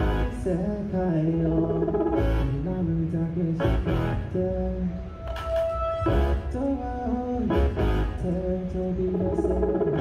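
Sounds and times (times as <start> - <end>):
keyboard: 0.0 - 10.0
electronic drum kit: 1.5 - 2.7, 9.1 - 10.0.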